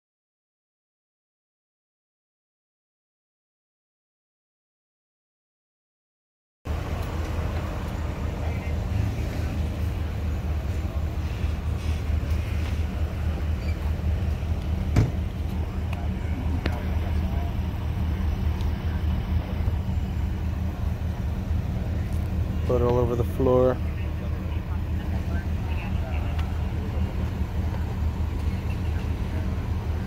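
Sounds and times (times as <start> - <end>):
vehicle engine idling: 6.7 - 30.0
faint voices: 7.4 - 30.0.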